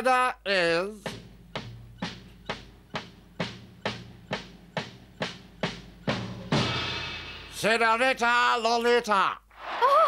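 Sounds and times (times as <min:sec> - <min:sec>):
suspense drum strikes: 0:01.1 - 0:07.6.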